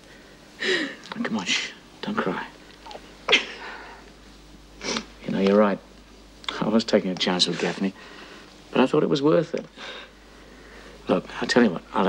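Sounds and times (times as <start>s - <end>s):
woman sobbing: 0.6s - 1.1s, 3.3s - 3.9s.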